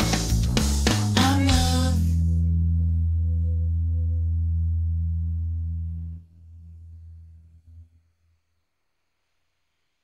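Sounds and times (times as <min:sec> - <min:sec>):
bass guitar low note: 0:00.0 - 0:08.0.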